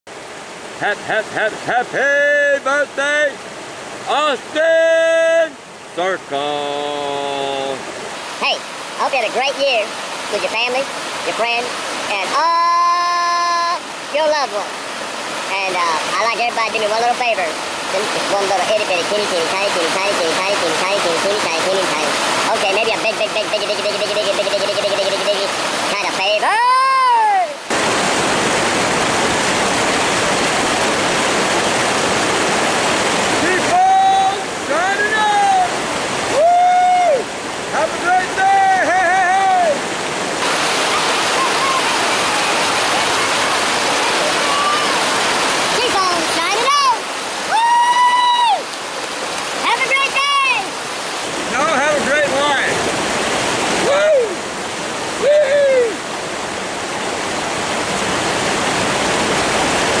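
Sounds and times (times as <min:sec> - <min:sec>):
river water rushing over rocks: 0:00.1 - 1:00.0.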